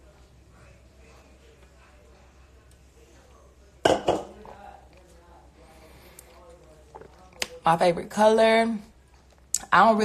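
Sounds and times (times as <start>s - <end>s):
drink can knocking on stone countertop: 3.8s - 4.4s.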